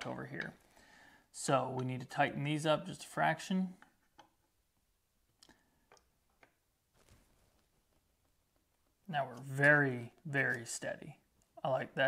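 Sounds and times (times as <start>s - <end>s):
soft rustle: 6.9s - 8.9s.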